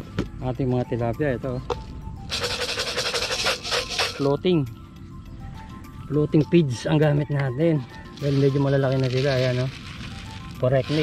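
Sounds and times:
pellets rattling in plastic bucket: 2.3s - 4.2s, 8.1s - 11.0s.

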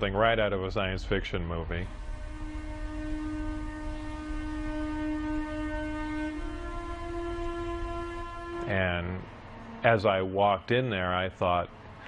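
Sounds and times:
electronic drone: 0.0s - 12.0s
low rumble: 0.0s - 12.0s.

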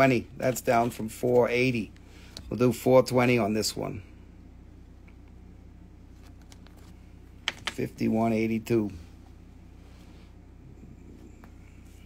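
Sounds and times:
man speaking: 0.0s - 4.1s, 7.7s - 9.1s
steady low hum: 0.0s - 12.0s.

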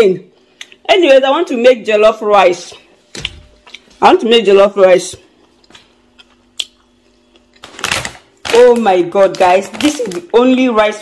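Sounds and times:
faint steady hum: 0.0s - 11.0s
plastic bag rustling and crinkling: 7.6s - 11.0s.

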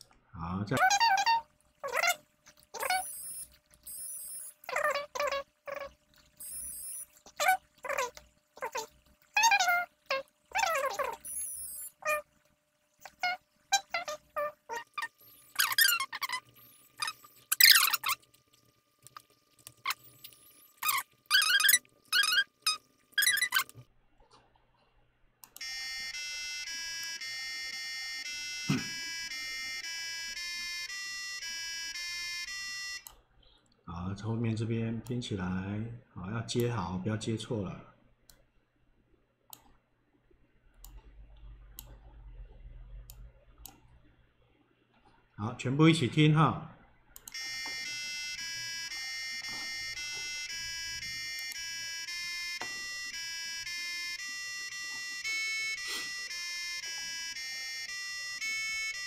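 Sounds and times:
high squeaky sped-up voice: 0.7s - 12.3s, 13.0s - 18.3s, 19.8s - 23.8s
electronic beeping tune: 2.8s - 7.2s, 10.6s - 12.2s, 25.6s - 33.0s, 47.3s - 59.0s.

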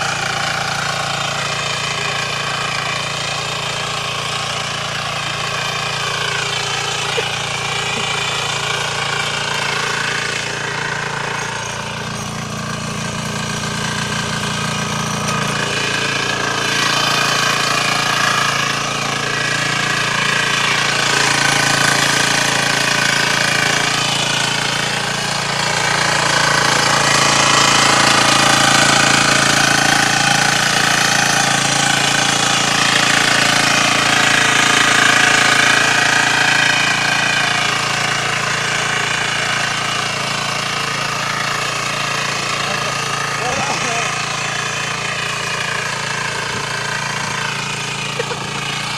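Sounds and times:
cultivator engine tilling soil: 0.0s - 48.9s.

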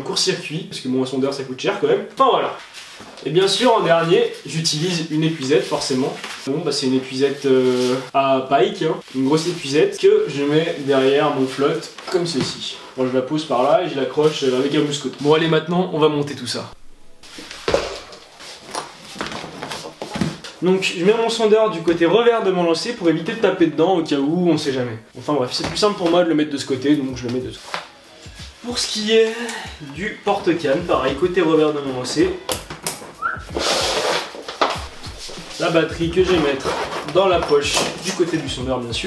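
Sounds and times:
rough scraping and rustling: 7.1s - 8.2s, 33.6s - 38.3s.

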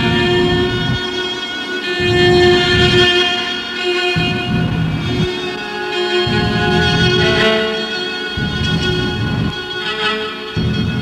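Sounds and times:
detuned cello bowed notes: 0.0s - 11.0s.

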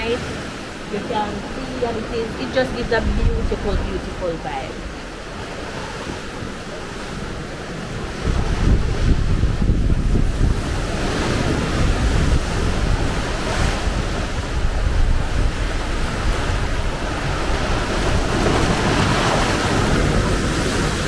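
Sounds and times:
sea waves breaking on rocks: 0.0s - 21.0s
wind buffeting microphone: 0.0s - 21.0s.

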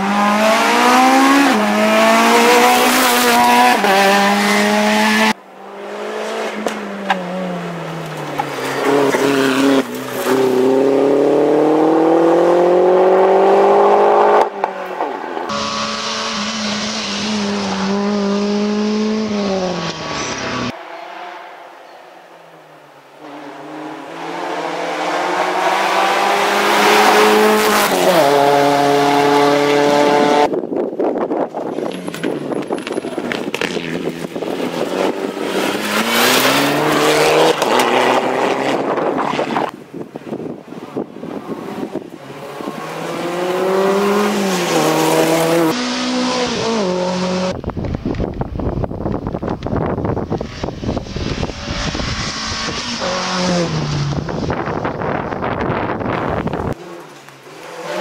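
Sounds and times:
rally car engines revving: 0.0s - 30.6s, 31.7s - 58.0s.

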